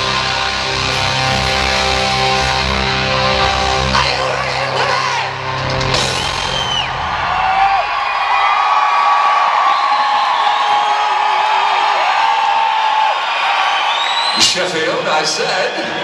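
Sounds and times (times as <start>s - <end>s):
rock band final chord: 0.0s - 7.7s
crowd cheering and whistling: 0.0s - 16.0s.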